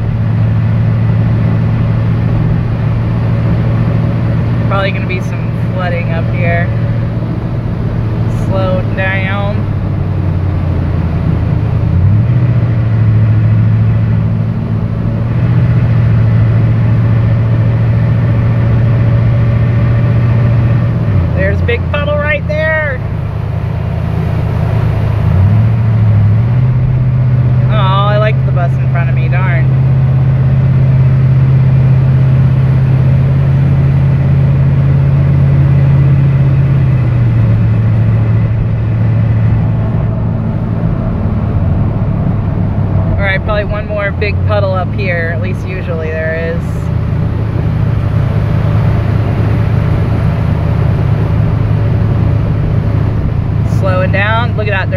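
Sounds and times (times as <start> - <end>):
engine and road hum: 0.0 - 54.9.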